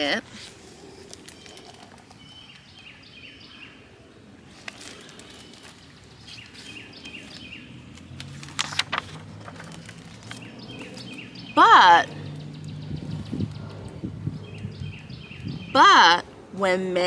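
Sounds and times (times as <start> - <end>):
small birds chirping: 0.0 - 8.5, 9.5 - 16.8
paper page turning: 4.5 - 11.1.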